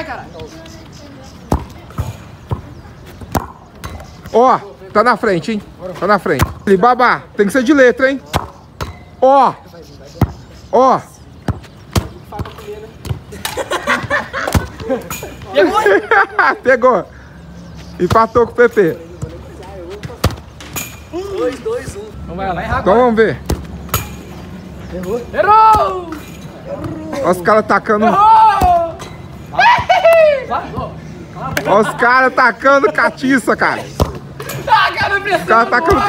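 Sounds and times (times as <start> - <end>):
soccer ball thudding: 1.5 - 4.0, 6.3 - 6.7, 19.2 - 20.6, 23.4 - 24.2, 33.9 - 34.3.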